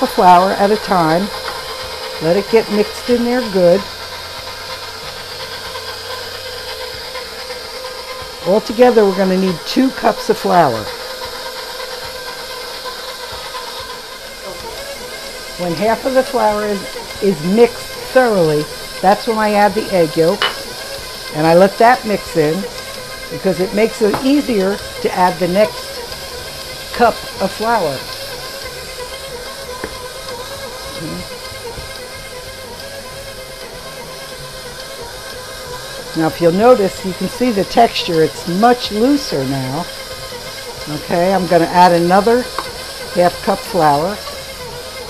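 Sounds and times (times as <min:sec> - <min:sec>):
stand mixer motor hum and whine: 0:00.0 - 0:45.0.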